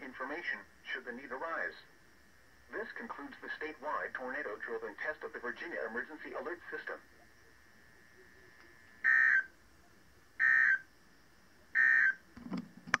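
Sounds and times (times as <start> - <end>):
buzzy digital data bursts: 6.7 - 10.9.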